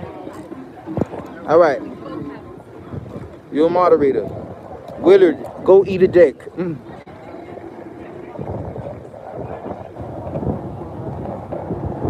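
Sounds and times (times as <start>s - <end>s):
faint voices: 0.0s - 12.0s
wind rumbling on microphone: 0.0s - 12.0s.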